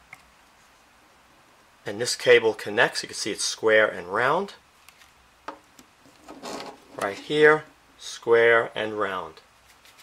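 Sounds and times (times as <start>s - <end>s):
soft handling rub: 6.0s - 7.6s.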